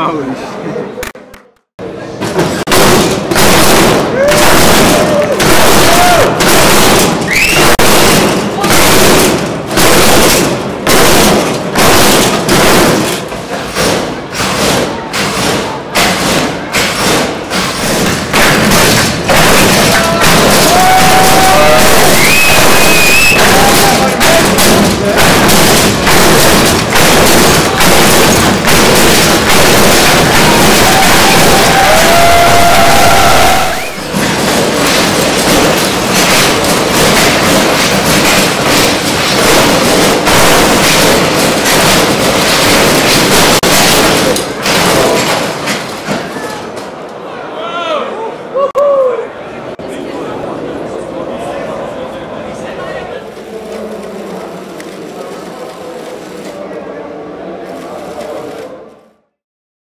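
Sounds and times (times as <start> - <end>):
loud crowd noise: 0.0 - 59.4
whistles: 7.3 - 7.8, 22.1 - 23.5.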